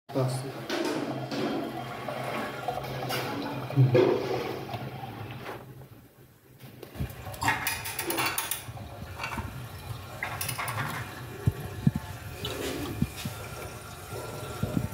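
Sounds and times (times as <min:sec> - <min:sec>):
water rushing in toilet cistern: 0:00.1 - 0:05.8, 0:06.9 - 0:14.9.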